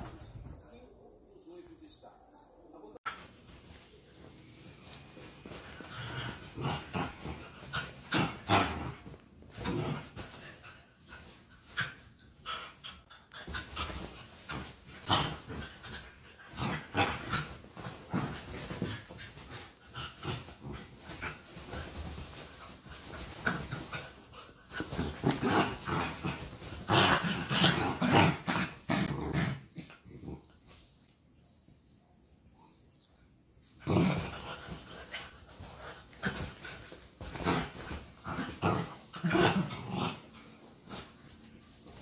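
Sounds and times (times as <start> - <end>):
dogs play-fighting noises: 3.1 - 42.0.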